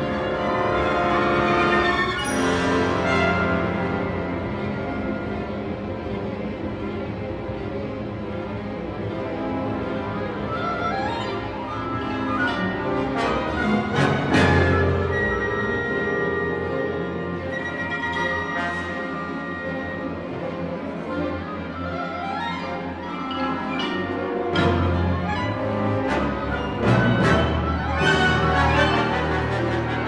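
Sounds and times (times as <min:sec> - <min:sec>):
orchestra playing: 0:00.0 - 0:30.0.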